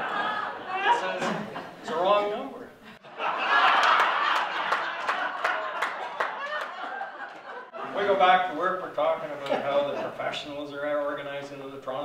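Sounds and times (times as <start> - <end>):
audience laughing: 0.0 - 2.1, 3.0 - 8.2
scattered clapping: 3.6 - 7.7.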